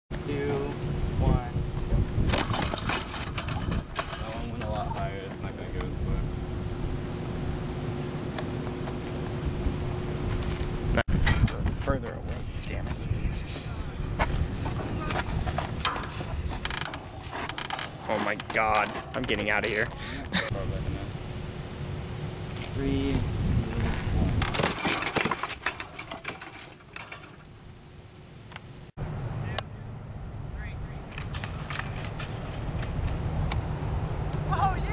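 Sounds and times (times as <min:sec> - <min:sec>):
low outdoor rumble: 0:00.1 - 0:34.9
metallic clattering of springs and frame: 0:02.3 - 0:05.5, 0:11.2 - 0:12.0, 0:12.6 - 0:20.0, 0:24.4 - 0:27.6, 0:31.1 - 0:33.4.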